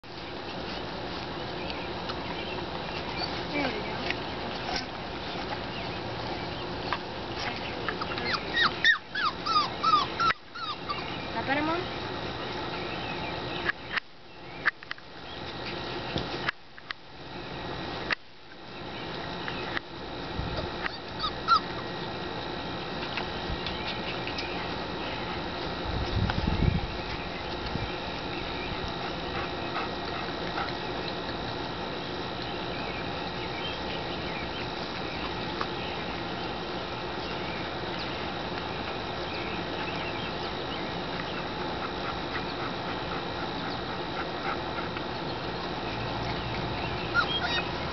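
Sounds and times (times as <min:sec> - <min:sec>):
puppies whimpering: 0:07.5 - 0:11.7, 0:20.8 - 0:21.9, 0:46.2 - 0:47.9.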